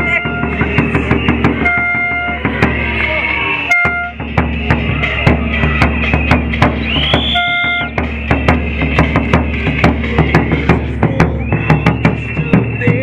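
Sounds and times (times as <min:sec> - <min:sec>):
high held tones: 0:00.0 - 0:13.0
marching bass drum: 0:00.0 - 0:13.0.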